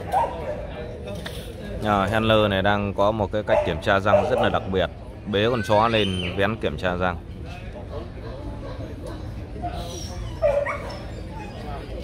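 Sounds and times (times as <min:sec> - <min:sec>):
dog yelping: 0:09.6 - 0:12.0.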